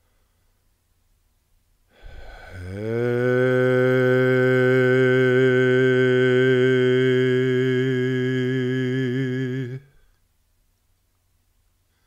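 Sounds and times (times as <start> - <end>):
man chanting sustained note: 2.1 - 10.0.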